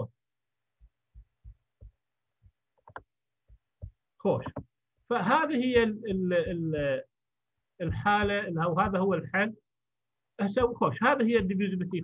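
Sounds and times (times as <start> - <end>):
soft low thumps: 0.7 - 7.0, 7.8 - 9.3, 10.5 - 12.0.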